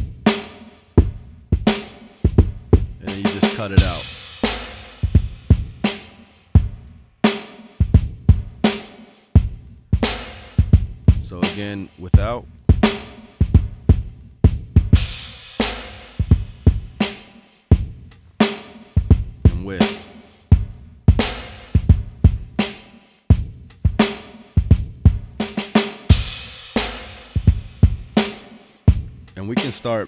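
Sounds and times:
hip-hop drum beat: 0.0 - 30.0.

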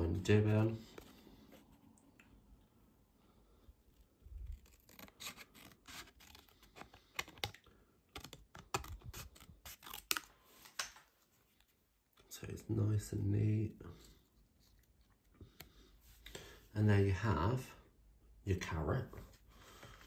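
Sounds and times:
scissors snipping paper: 4.5 - 10.9.

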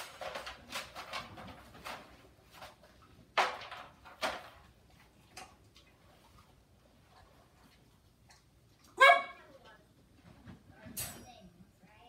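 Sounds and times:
dog barking: 9.0 - 9.5.

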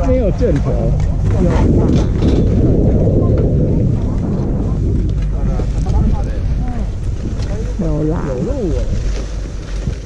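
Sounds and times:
people's voices: 0.0 - 9.3
wind buffeting microphone: 0.0 - 10.0.

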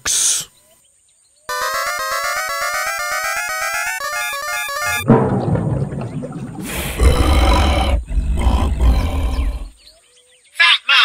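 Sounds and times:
cartoon creature roar: 6.9 - 9.7.

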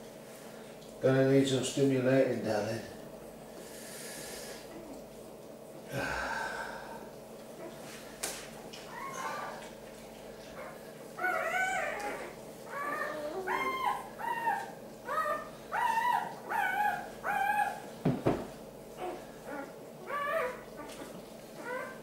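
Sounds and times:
puppy crying: 8.8 - 9.7, 10.5 - 17.9, 18.9 - 22.0.

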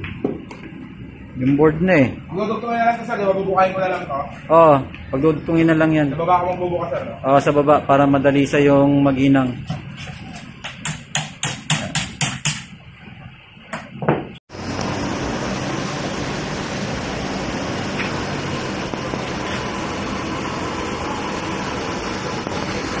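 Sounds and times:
gas torch hissing: 14.5 - 23.0.

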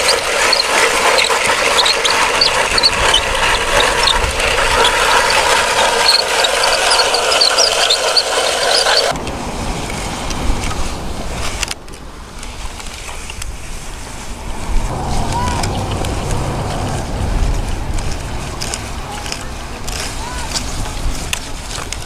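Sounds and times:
toy vehicles scraping through sand: 0.0 - 9.2
low rumble: 13.8 - 20.8.

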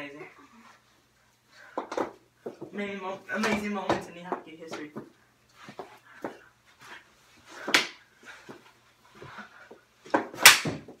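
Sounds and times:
hockey sticks knocking ball: 1.7 - 5.1, 7.6 - 8.6, 10.0 - 11.0.

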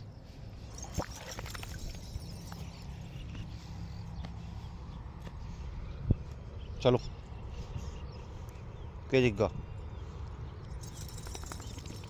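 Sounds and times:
footsteps on dirt and dry grass: 2.1 - 6.7.

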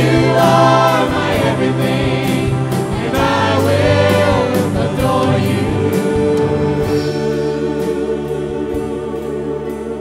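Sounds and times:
bass guitar: 0.0 - 10.0
drum kit steady beat: 0.0 - 10.0
keyboards: 0.0 - 10.0
singers in harmony: 0.0 - 10.0.

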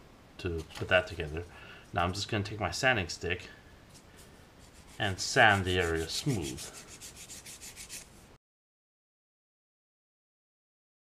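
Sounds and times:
sanding stick scratching plastic: 4.6 - 8.1.

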